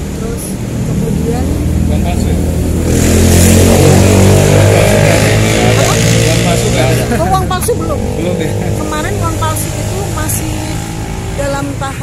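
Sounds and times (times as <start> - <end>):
vehicle engine running: 0.0 - 12.0.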